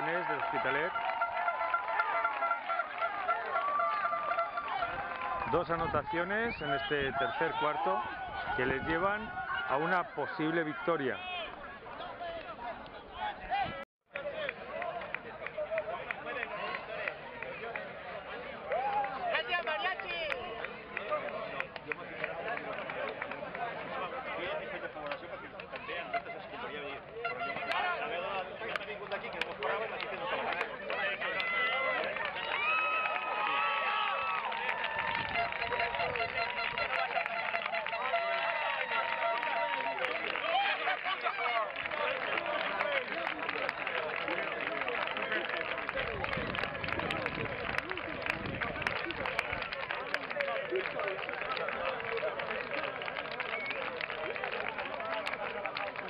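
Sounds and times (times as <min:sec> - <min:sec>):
crowd talking and shouting: 0:00.0 - 0:56.0
long held calls: 0:00.9 - 0:05.5, 0:35.3 - 0:40.8.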